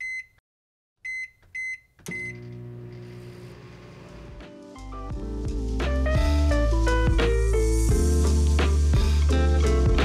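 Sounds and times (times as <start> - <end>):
oven control panel beeping: 1.1 - 3.1
soft background music: 4.0 - 10.0.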